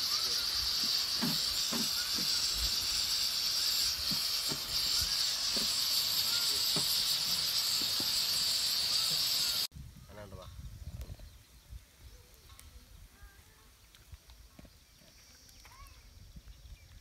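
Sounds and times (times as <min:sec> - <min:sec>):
fried rice sizzling in a pan: 0:00.0 - 0:09.7.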